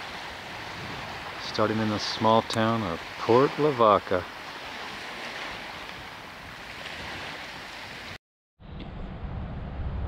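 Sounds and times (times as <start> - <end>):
low wind rumble on microphone: 0.0 - 1.4, 4.8 - 10.0
small waves washing: 0.0 - 8.2.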